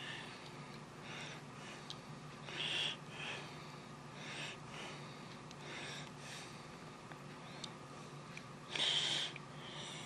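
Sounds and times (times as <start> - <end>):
low steady hum: 0.0 - 10.0
person breathing softly: 0.0 - 10.0.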